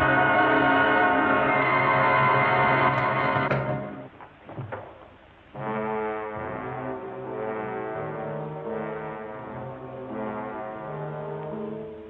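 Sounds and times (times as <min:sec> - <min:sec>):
low brass sustained chords: 0:00.0 - 0:04.1, 0:05.5 - 0:12.0.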